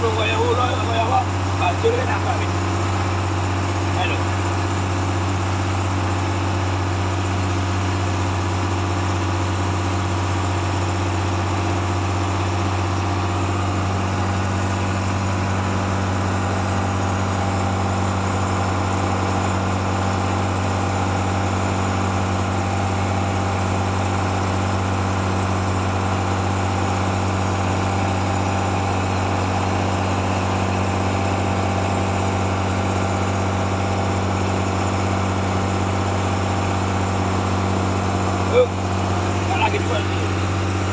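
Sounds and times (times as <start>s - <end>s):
boat engine droning: 0.0s - 40.9s.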